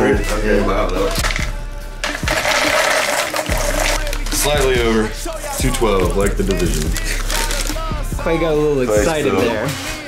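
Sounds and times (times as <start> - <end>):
background music: 0.0 - 10.0
cereal poured into bowl: 2.0 - 4.5.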